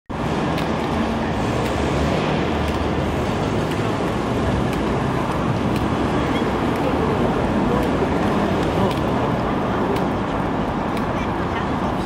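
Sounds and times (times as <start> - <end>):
city street traffic: 0.1 - 12.0.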